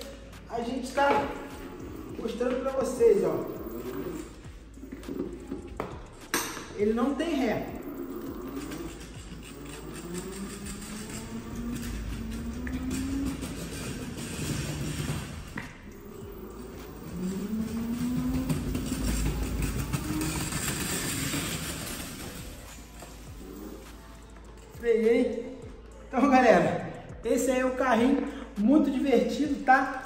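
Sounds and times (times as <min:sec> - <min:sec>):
small wheels rolling on tiles: 0:00.8 - 0:24.8
electric motor whining: 0:01.3 - 0:05.5, 0:07.5 - 0:24.1.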